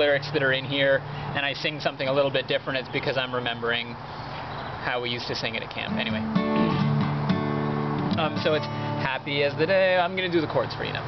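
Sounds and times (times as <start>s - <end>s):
acoustic guitar strumming: 5.7s - 11.0s.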